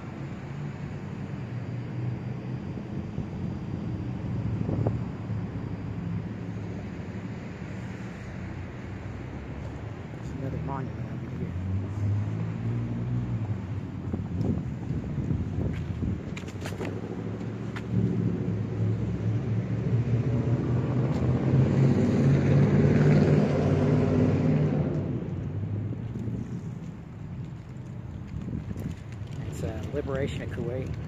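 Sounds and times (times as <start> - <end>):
vehicle engine passing: 10.2 - 14.6, 16.8 - 26.0.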